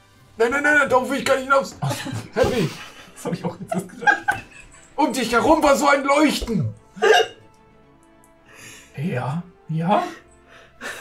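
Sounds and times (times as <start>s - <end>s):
faint background music: 0.0s - 11.0s.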